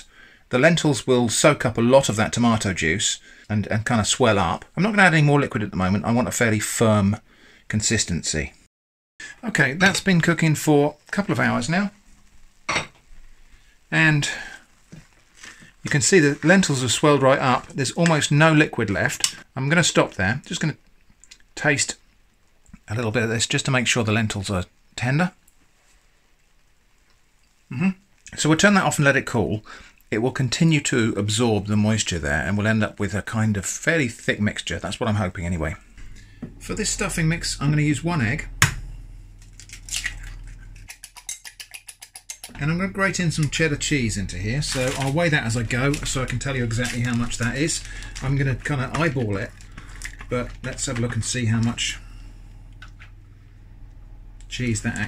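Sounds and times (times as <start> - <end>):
kitchenware clatter: 12.7 - 13.0, 39.6 - 42.6
egg cracking on ceramic bowl: 38.6 - 42.6
fork beating egg in bowl: 39.4 - 45.0
spoon and pot handling: 39.4 - 51.8.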